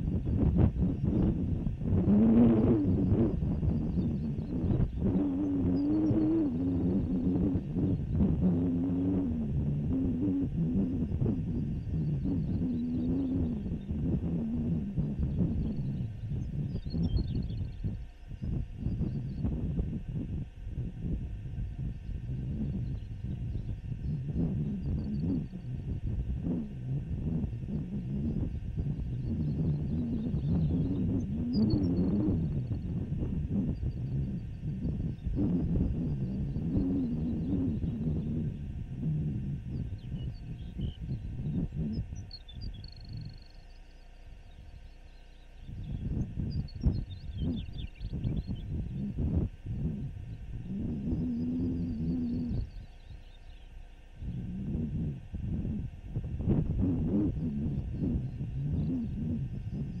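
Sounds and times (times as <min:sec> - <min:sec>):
wind buffeting microphone: 0:00.0 - 0:44.8, 0:45.5 - 0:53.3, 0:54.0 - 1:00.0.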